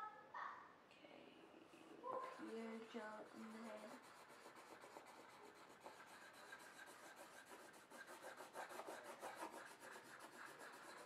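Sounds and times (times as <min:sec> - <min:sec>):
pencil shading on paper: 0:02.2 - 0:11.0.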